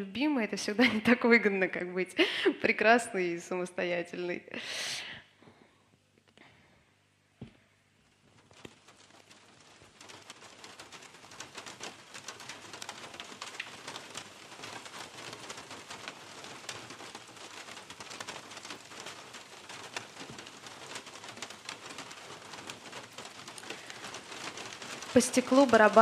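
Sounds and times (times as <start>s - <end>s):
rain pattering: 0.7s - 2.8s, 7.4s - 26.0s.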